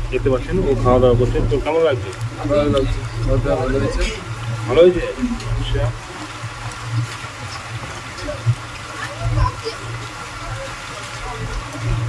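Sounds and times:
low uneven rumble: 0:00.0 - 0:12.0
water noise: 0:00.0 - 0:12.0.

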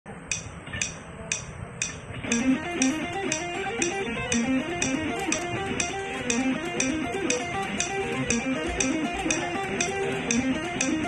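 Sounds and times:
metronome clicking: 0:00.2 - 0:11.0.

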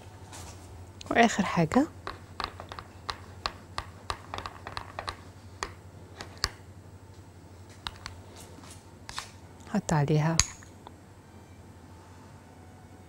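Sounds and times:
metal spoon clicking on glass bowl: 0:10.4 - 0:10.7.

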